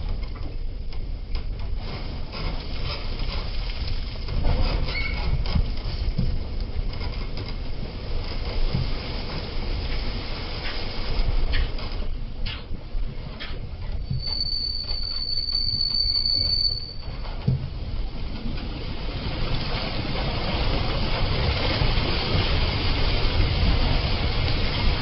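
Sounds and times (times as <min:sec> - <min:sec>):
high-pitched squeal: 0:14.0 - 0:17.1.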